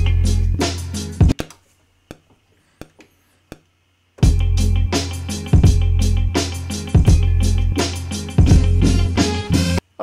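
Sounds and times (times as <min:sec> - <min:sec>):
hip-hop beat: 0:00.0 - 0:01.4, 0:04.2 - 0:09.8.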